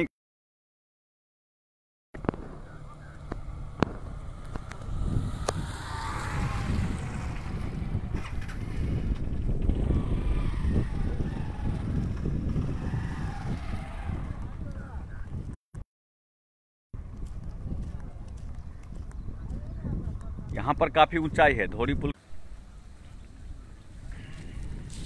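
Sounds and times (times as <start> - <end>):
motorcycle passing: 2.2 - 15.3
wind buffeting microphone: 2.2 - 15.6, 17.0 - 25.0.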